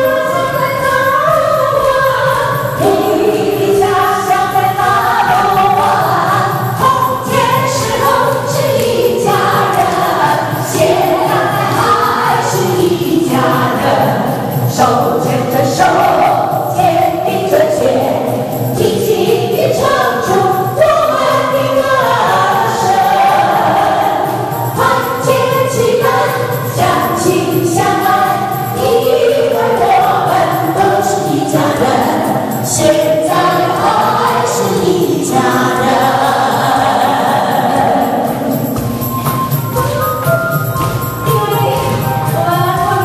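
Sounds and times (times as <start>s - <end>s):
music: 0.0s - 43.0s
people singing in unison: 0.0s - 43.0s.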